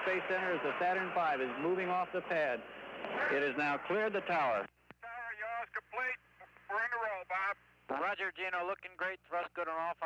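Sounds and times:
radio-like voice speaking: 3.1 - 10.0.

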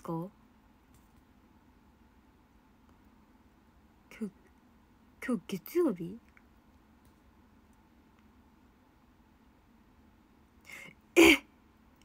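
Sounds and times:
faint breath: 10.6 - 11.0
woman clearing her throat: 11.2 - 11.5.

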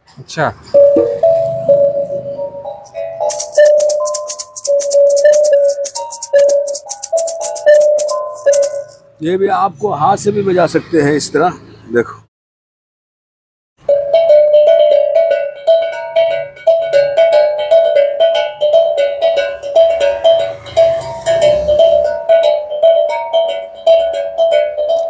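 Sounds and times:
bell-like tuned percussion: 0.8 - 9.1, 13.8 - 25.0.

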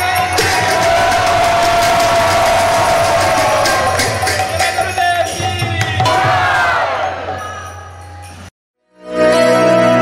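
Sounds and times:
metal percussion clashing: 0.0 - 8.5
group cheering: 0.3 - 5.2, 6.0 - 7.4.

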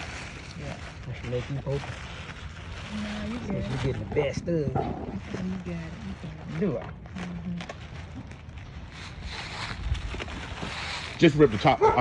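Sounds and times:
plastic wrap crinkling: 0.0 - 12.0.

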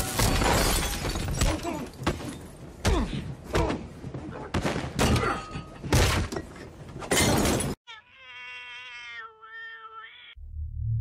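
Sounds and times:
smashing and shattering: 0.0 - 2.5.

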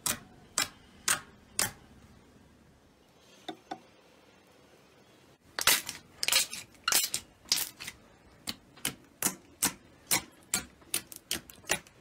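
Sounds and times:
fingertips popping slime: 0.0 - 1.8, 5.6 - 12.0.

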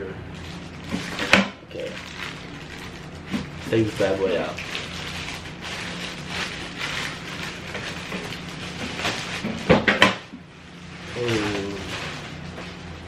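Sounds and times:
cardboard packaging rustling: 0.4 - 10.0, 10.8 - 13.0.

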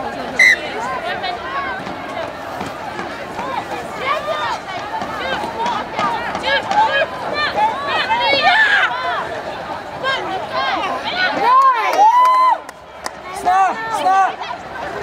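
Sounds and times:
low crowd murmur: 0.0 - 15.0
players shouting and calling: 0.0 - 15.0.

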